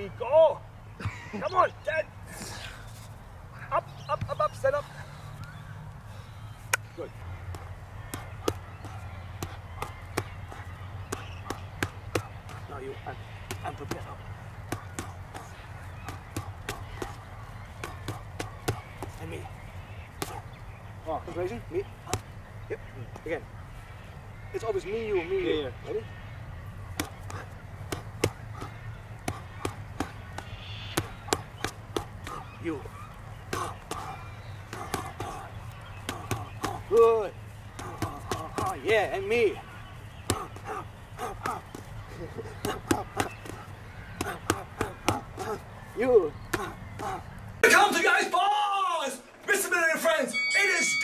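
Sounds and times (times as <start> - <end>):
boxing gloves slapping: 6.7 - 12.7, 13.4 - 19.2, 20.1 - 20.5, 26.9 - 32.6, 33.4 - 39.1, 40.2 - 45.7, 46.4 - 47.3.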